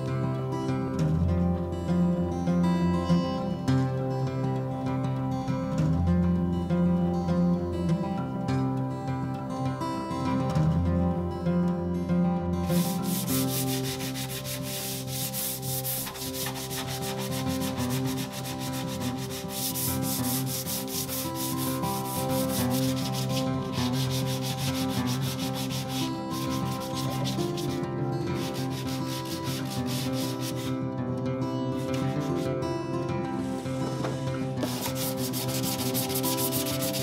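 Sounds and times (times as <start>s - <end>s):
hand sanding wood: 12.7s - 30.7s, 34.6s - 37.0s.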